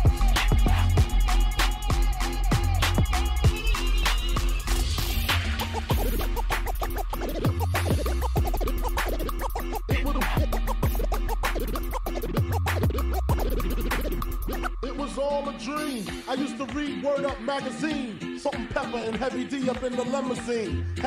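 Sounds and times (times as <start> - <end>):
hip hop beat with heavy bass: 0.0 - 21.0
record scratching: 4.0 - 17.8.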